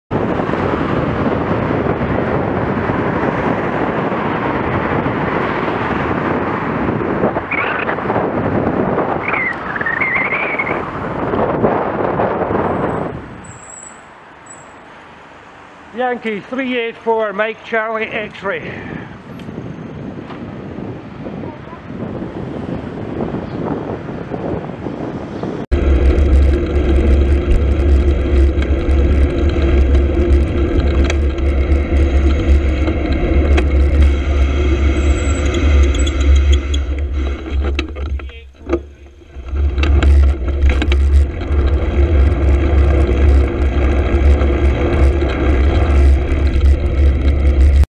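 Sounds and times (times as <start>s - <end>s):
wind rumble on microphone: 0.1s - 14.5s, 16.0s - 47.9s
traffic and road noise: 0.1s - 47.9s.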